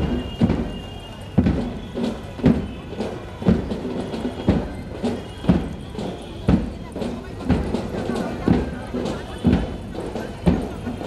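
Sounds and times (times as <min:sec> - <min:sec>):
drum beating marching rhythm: 0:00.0 - 0:11.0.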